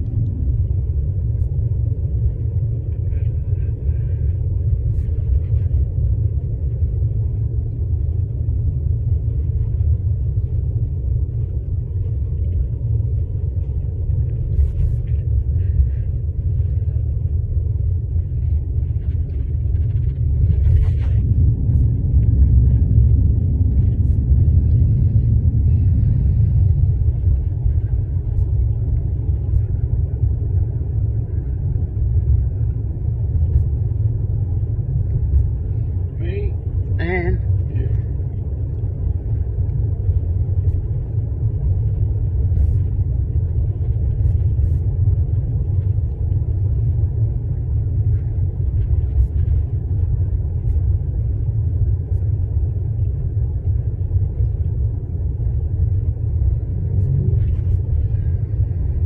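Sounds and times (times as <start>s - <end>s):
car cabin road and engine rumble: 0.0s - 59.0s.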